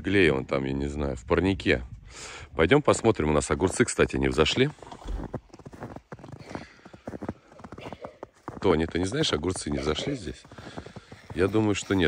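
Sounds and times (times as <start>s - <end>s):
footsteps crunching through snow: 3.3s - 12.0s.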